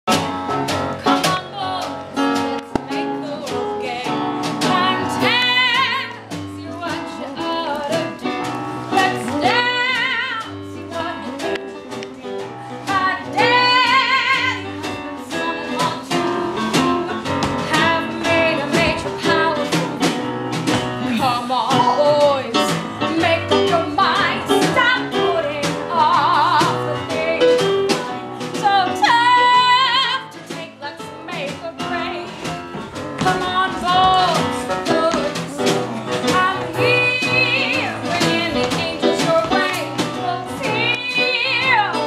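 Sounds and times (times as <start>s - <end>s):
backing music with steady beat: 0.1s - 42.0s
woman singing with vibrato: 1.1s - 16.9s, 17.6s - 20.3s, 21.0s - 32.5s, 33.2s - 42.0s.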